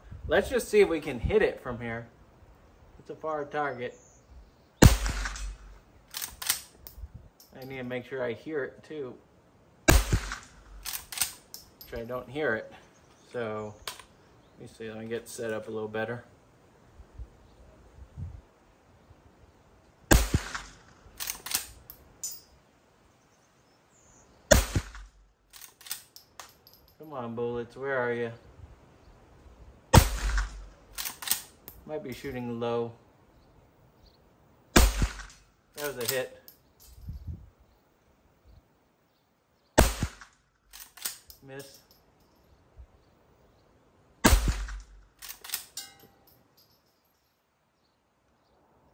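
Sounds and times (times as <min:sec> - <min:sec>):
rifle shots: 0:04.8 - 0:06.8, 0:09.9 - 0:11.4, 0:20.1 - 0:21.8, 0:24.5 - 0:25.1, 0:29.9 - 0:31.5, 0:34.8 - 0:36.2, 0:39.8 - 0:41.2, 0:44.2 - 0:45.7
rifle lever metallic clicks: 0:05.0 - 0:07.9, 0:10.0 - 0:12.1, 0:13.8 - 0:14.1, 0:20.4 - 0:22.5, 0:24.9 - 0:27.0, 0:30.2 - 0:32.4, 0:35.0 - 0:37.2, 0:40.2 - 0:42.0, 0:44.5 - 0:46.7.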